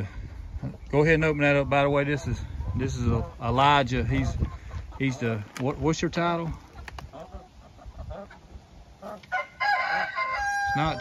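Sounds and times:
chicken flock sounds: 0.0 - 11.0
rooster crowing: 9.3 - 11.0.

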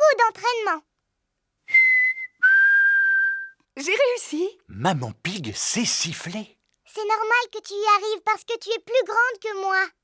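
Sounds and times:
person whistling two notes: 1.7 - 3.6.

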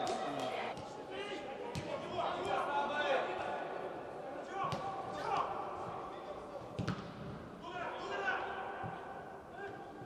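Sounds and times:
football kick thuds echoing: 6.8 - 7.2.

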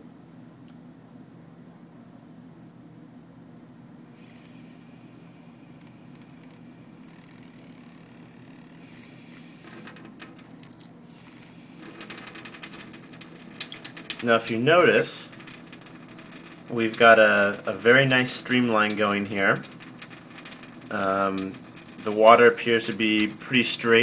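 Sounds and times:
steady low hum: 0.0 - 24.0
thin water stream into steel sink: 5.8 - 24.0.

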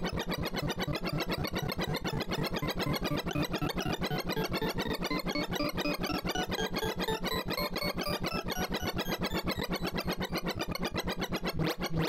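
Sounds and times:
rapid synthesized notes: 0.0 - 11.4.

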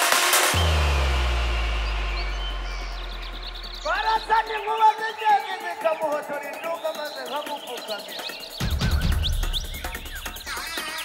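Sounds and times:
deep bass note: 0.6 - 4.6
high bird-like synth chirps: 0.6 - 11.0.

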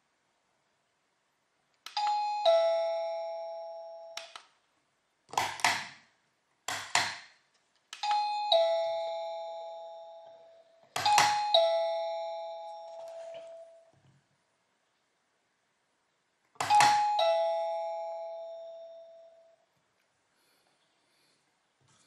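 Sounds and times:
doorbell ding-dong chime: 2.0 - 4.2, 8.0 - 13.9, 16.6 - 19.6.

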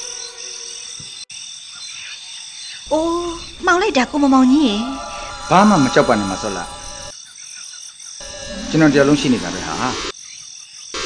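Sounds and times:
frogs croaking: 0.0 - 11.0
pulsing high insect chirr: 0.0 - 11.0.

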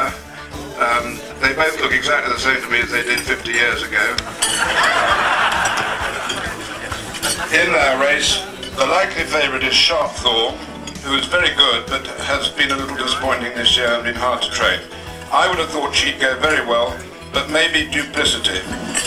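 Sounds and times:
crowd chatter: 0.0 - 13.2
cutlery and crockery clinking: 2.7 - 9.3, 10.1 - 13.5, 16.9 - 19.0.

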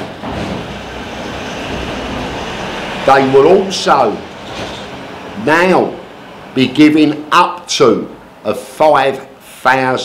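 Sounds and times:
passing vehicle rumble: 0.0 - 6.8.

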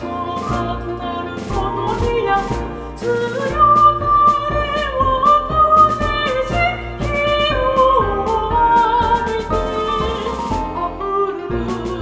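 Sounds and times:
soprano voice singing: 0.0 - 12.0.

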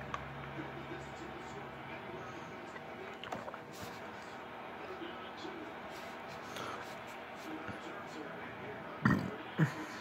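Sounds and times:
person's throat sounds: 9.0 - 9.7.

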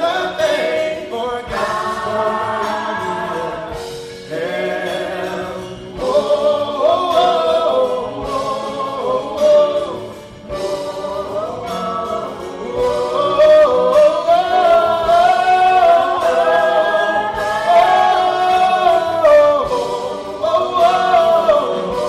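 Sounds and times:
band accompaniment: 0.0 - 22.0
voices singing in harmony: 0.0 - 22.0.

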